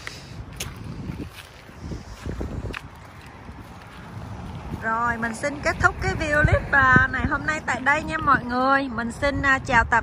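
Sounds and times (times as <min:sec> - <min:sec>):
footsteps on concrete: 0:00.0 - 0:06.6
low outdoor rumble: 0:00.0 - 0:10.0.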